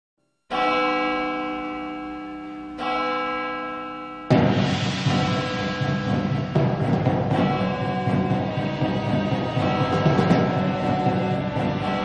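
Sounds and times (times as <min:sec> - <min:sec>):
large church bell ringing: 0:00.5 - 0:12.0.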